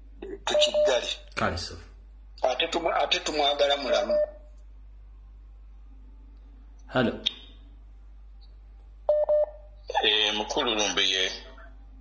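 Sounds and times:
low electrical hum on phone line: 0:00.0 - 0:12.0
man speaking: 0:00.5 - 0:02.0, 0:06.9 - 0:07.3.

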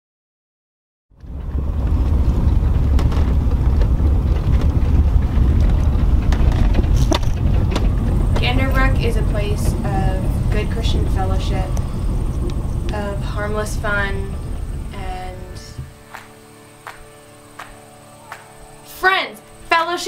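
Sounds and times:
steady low rumble: 0:01.1 - 0:18.0
people talking: 0:08.1 - 0:15.9, 0:18.9 - 0:20.0.

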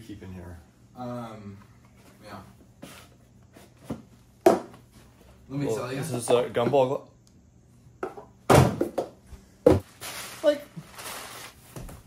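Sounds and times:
wooden cupboard knocks and thuds: 0:08.0 - 0:09.8.

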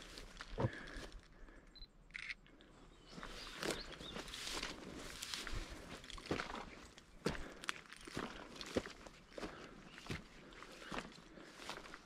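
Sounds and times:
footsteps crunching through dry grass: 0:00.0 - 0:01.3, 0:03.0 - 0:12.0
rustle of brushed vegetation: 0:03.0 - 0:12.0.

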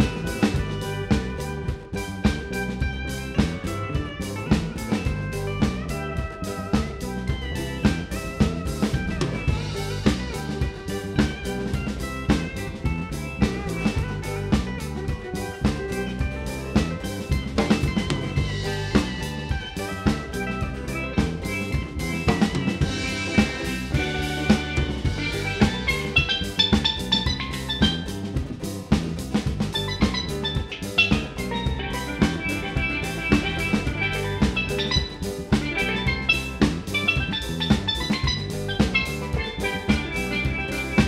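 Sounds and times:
bass drum beat: 0:00.0 - 0:41.0
guitars: 0:00.0 - 0:41.0
keyboard: 0:00.0 - 0:41.0
steel pan: 0:00.0 - 0:41.0
snare drum rimshots: 0:16.8 - 0:41.0.

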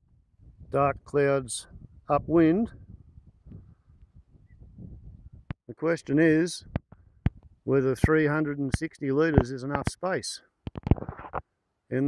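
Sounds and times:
wind rumble on microphone: 0:00.0 - 0:05.6, 0:06.6 - 0:08.2.

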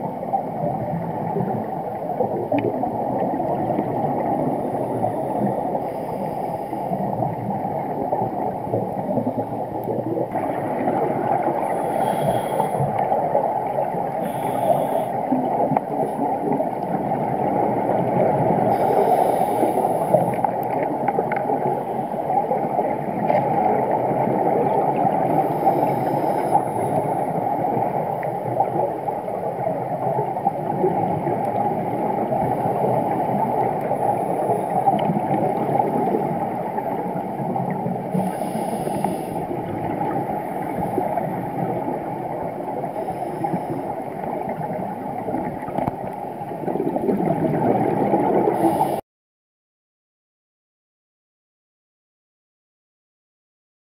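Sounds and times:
muffled underwater rushing: 0:00.0 - 0:49.0.

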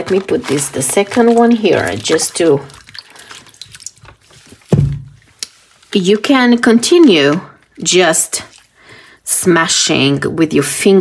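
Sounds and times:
water sloshing in glass bowl: 0:00.0 - 0:06.4.

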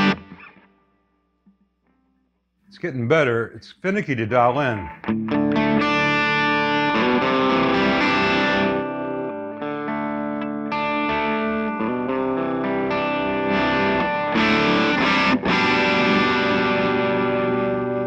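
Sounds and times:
heavily driven electric guitar chords: 0:00.0 - 0:00.8, 0:04.6 - 0:18.0.

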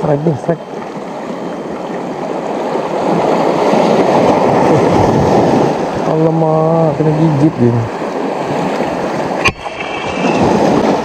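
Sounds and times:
sea water washing around rocks: 0:00.8 - 0:06.1, 0:07.9 - 0:11.0.

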